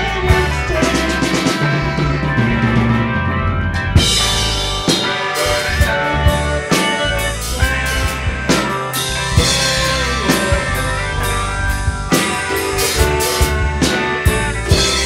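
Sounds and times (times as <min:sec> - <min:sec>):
rock band jamming: 0:00.0 - 0:15.0.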